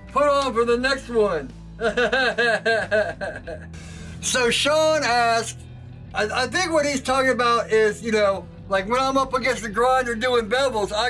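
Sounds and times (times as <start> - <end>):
background music: 0.0 - 11.0
man laughing: 1.8 - 3.8.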